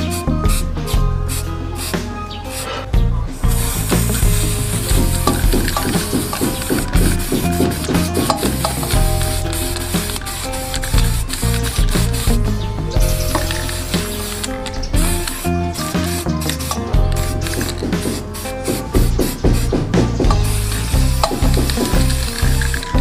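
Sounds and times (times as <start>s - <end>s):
background music: 0.0s - 23.0s
spray can hissing: 0.0s - 23.0s.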